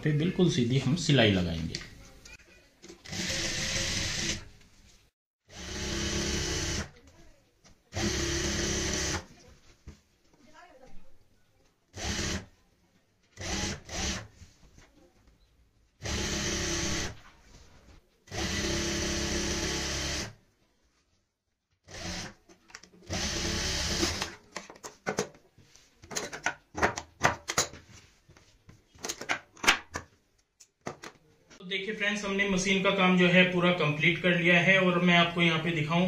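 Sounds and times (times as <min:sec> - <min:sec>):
industrial sewing machine stitching: 0:03.0 - 0:04.5, 0:05.5 - 0:06.9, 0:07.9 - 0:09.3, 0:12.0 - 0:12.5, 0:13.4 - 0:14.3, 0:16.0 - 0:17.2, 0:18.3 - 0:20.4, 0:21.9 - 0:22.4, 0:23.1 - 0:24.4.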